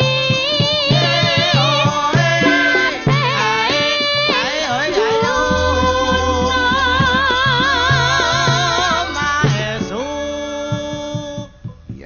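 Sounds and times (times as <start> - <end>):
drum strokes: 0.0 - 12.0
long held gamelan note: 2.4 - 11.4.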